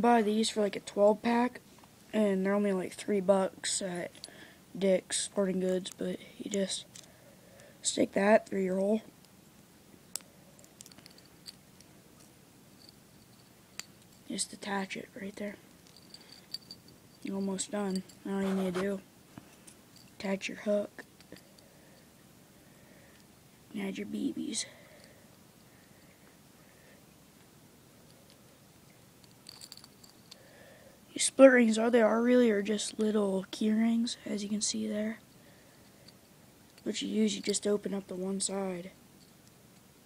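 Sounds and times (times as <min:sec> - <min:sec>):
small metal parts clicking: 0:06.6 - 0:07.1, 0:10.1 - 0:14.3, 0:15.7 - 0:18.3, 0:29.2 - 0:30.5.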